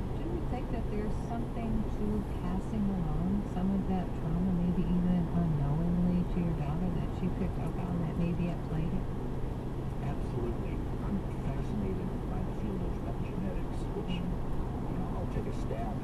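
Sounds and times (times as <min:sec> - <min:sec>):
car road and engine noise: 0:00.0 - 0:16.0
person talking indistinctly: 0:10.0 - 0:16.0.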